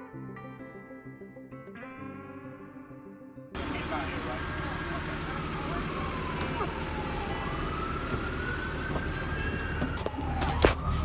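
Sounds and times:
emergency vehicle siren wailing: 3.6s - 11.0s.

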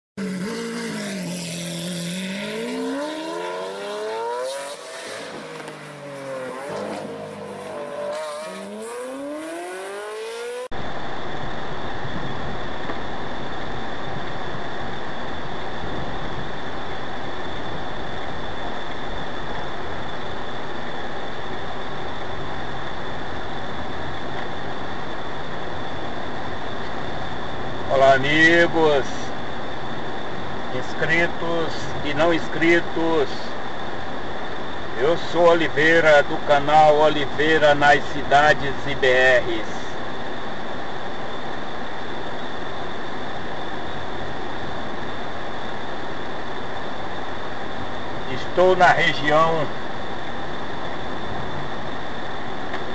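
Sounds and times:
racing car engine revving: 0.2s - 10.7s
road and engine noise in car: 0.2s - 52.9s
tyre squeal: 4.5s - 9.2s.

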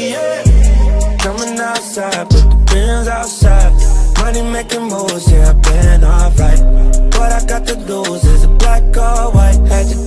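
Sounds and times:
melodic line: 0.0s - 10.0s
trap beat: 0.0s - 10.0s
deep bass notes: 0.5s - 1.4s, 2.3s - 4.7s, 5.3s - 10.0s
ticking hi-hats: 0.5s - 10.0s.

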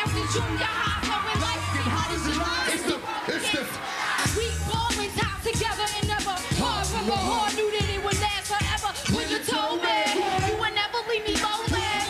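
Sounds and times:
crowd cheering and singing along: 0.0s - 12.0s
live hip-hop concert music: 0.0s - 12.0s.

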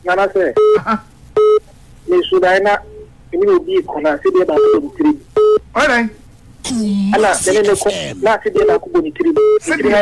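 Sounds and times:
person talking over phone line: 6.6s - 10.0s.

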